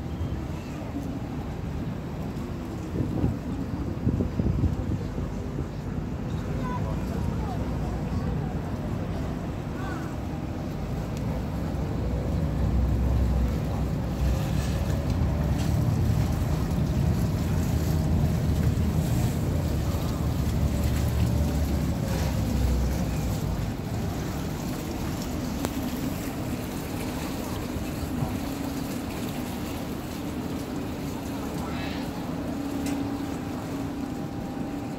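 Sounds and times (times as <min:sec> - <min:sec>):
ferry engine rumbling: 0:00.0 - 0:34.9
propellers churning water: 0:00.0 - 0:34.9
wind buffeting microphone: 0:01.5 - 0:09.7.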